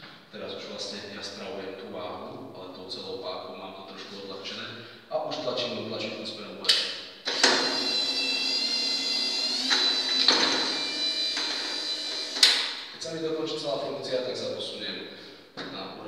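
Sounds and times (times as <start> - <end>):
electric drive whining: 7.2 - 13.0.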